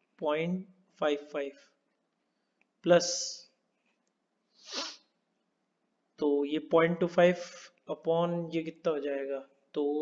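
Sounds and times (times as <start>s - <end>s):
person breathy exhale: 4.5s - 5.1s.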